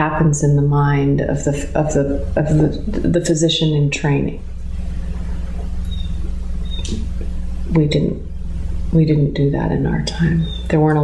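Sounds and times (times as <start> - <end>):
low background hum: 0.0 - 11.0
faint high squeak: 5.9 - 7.1.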